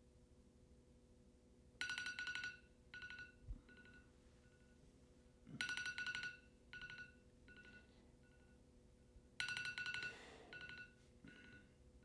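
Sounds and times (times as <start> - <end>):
phone ringtone trilling: 9.4 - 11.5.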